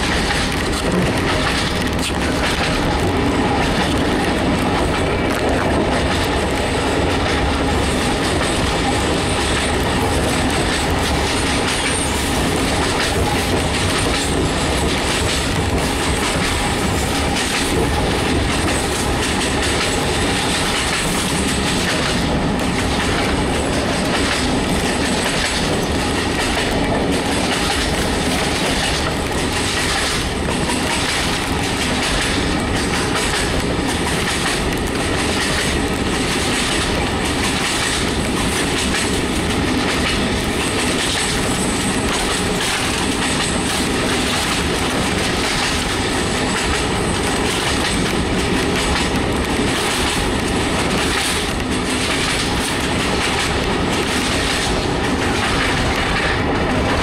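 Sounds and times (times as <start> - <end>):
train wheels rumbling: 0.0 - 57.0
wheels clicking over rail joints: 0.0 - 57.0.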